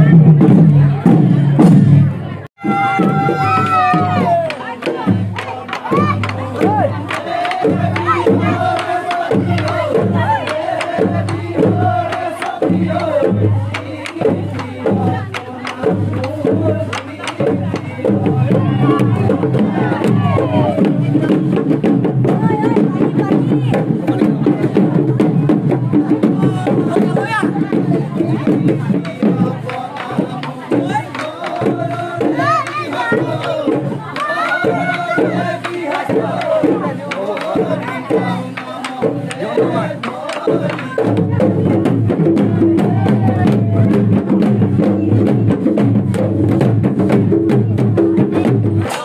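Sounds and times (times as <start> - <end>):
crowd noise: 0.0 - 49.0
drums beating fast rhythm: 0.0 - 49.0
singing and calling voices: 0.0 - 49.0.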